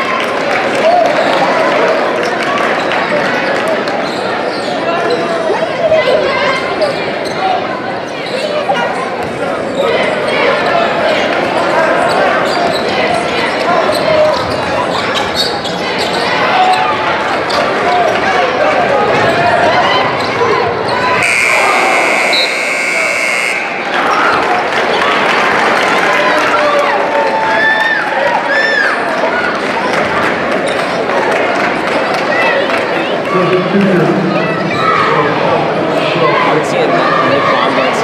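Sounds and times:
gym crowd noise: 0:00.0 - 0:38.0
scoreboard buzzer: 0:21.2 - 0:24.0.

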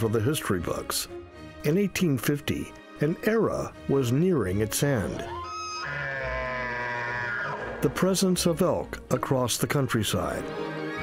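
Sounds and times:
elk bugling: 0:05.2 - 0:07.8.

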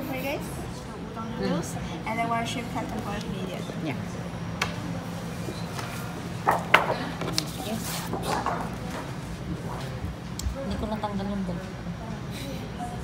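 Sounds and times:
faint voices: 0:00.0 - 0:13.0.

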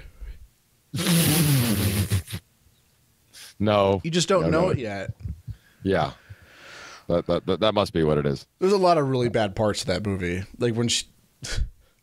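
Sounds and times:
harsh hiss: 0:01.0 - 0:02.4.

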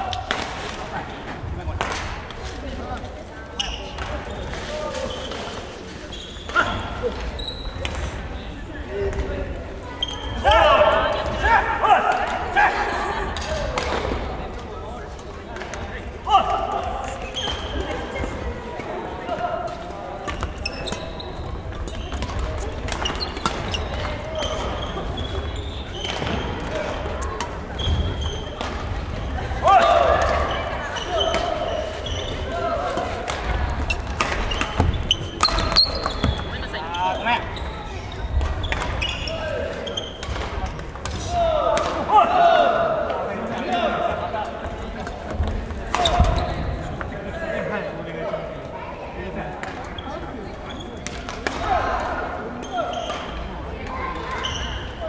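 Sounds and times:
echoing voices: 0:00.0 - 0:55.0
players shouting: 0:29.4 - 0:33.4, 0:41.1 - 0:44.2.

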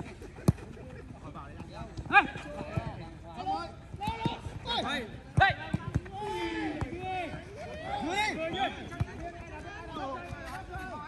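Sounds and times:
footballers shouting: 0:01.8 - 0:11.0.

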